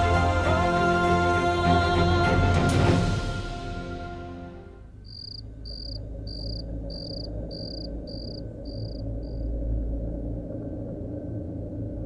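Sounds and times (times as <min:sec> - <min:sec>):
background music: 0:00.0 - 0:04.9
low steady hum: 0:04.8 - 0:12.0
cricket chirping: 0:05.0 - 0:09.6.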